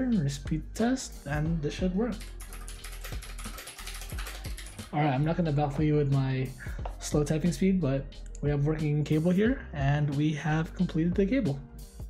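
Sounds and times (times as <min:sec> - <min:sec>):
mechanical keyboard typing: 0:02.2 - 0:04.9.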